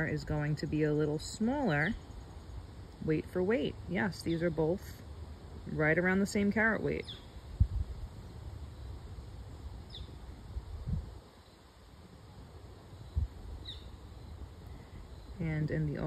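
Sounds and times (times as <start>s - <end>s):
low outdoor rumble: 0.0s - 16.0s
faint bird chirps: 6.8s - 7.6s, 9.8s - 10.3s, 12.9s - 16.0s.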